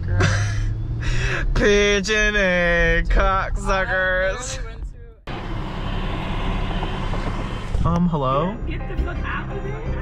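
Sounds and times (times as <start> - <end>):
vehicle and street noise: 0.0 - 10.0
man's voice: 1.4 - 4.7.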